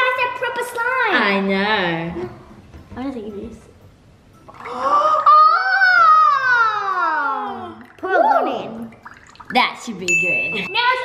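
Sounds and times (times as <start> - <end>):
high voice wordless ooh: 4.6 - 8.7.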